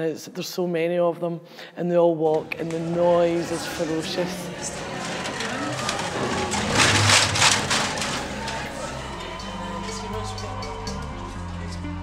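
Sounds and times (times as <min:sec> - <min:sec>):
metal cans rattling: 0:03.4 - 0:09.4.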